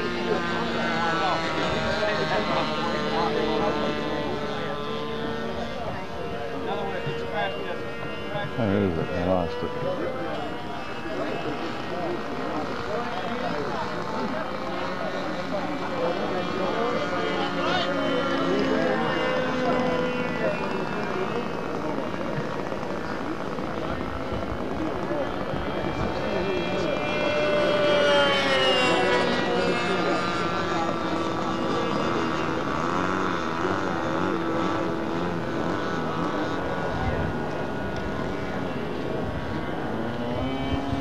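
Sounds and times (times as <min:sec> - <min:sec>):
model aircraft engine in flight: 0:00.0 - 0:41.0.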